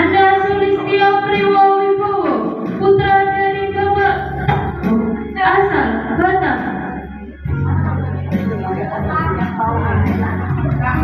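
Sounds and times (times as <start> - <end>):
people singing over music: 7.2 - 11.0.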